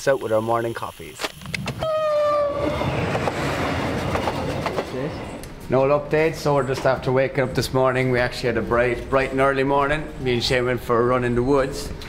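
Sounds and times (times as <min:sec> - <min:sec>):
train wheels rushing on rails: 0:02.4 - 0:05.8.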